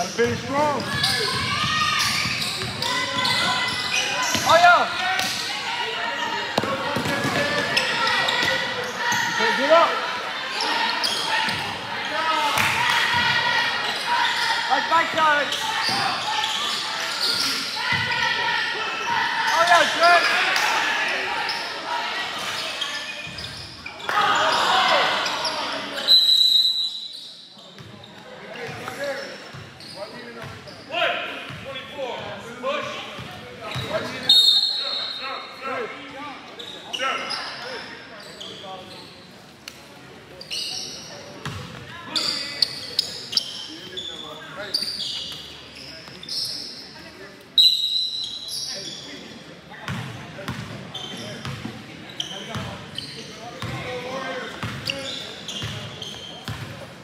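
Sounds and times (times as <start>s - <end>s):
referee's whistle: 26.0s - 27.4s, 34.2s - 35.3s, 47.6s - 48.6s
basketball bouncing on court floor: 56.4s - 56.7s.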